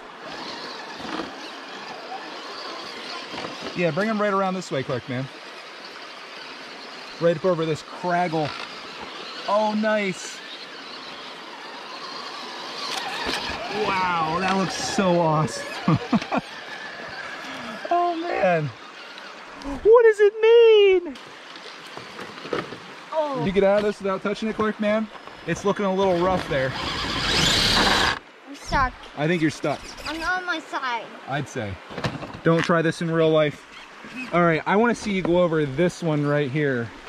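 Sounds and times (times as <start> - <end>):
tires scrabbling on rock: 0.0 - 19.6, 21.2 - 30.4
toy car motor whirring: 0.2 - 19.5, 25.3 - 28.2, 29.6 - 30.3.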